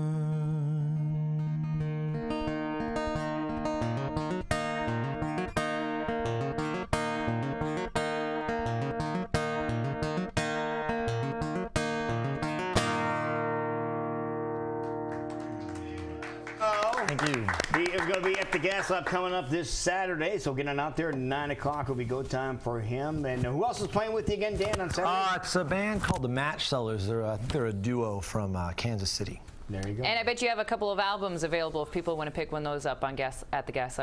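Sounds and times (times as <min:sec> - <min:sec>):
acoustic guitar picking: 0:00.0 - 0:16.6.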